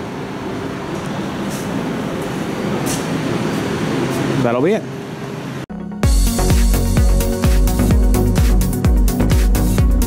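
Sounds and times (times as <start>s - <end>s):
elevator mechanical hum: 0.0s - 7.2s.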